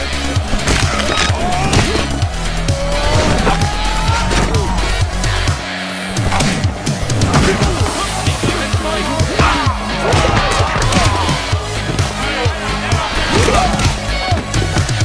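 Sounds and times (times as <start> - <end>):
loud music with pulsing bass: 0.0 - 15.0.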